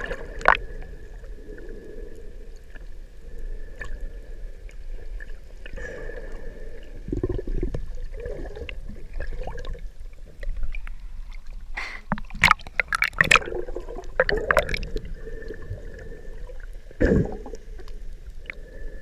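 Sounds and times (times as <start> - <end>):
muffled underwater water movement: 0.0 - 19.0.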